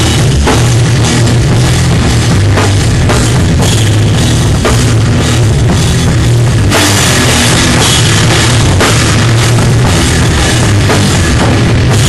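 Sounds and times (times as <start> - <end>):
drum kit hitting: 0.0 - 12.0
hardcore band playing live: 0.0 - 12.0.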